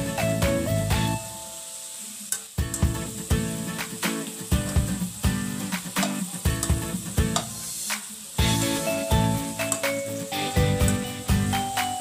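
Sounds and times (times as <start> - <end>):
shrimp sizzling in oil: 0.0 - 12.0.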